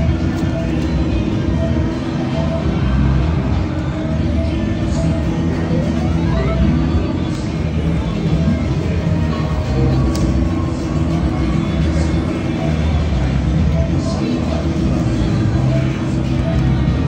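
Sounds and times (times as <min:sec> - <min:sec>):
faint voices: 0:00.0 - 0:17.0
music playing: 0:00.0 - 0:17.0.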